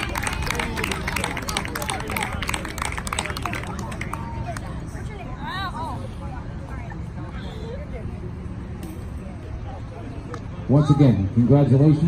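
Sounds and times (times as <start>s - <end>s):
faint voices and chatter: 0.0s - 12.0s.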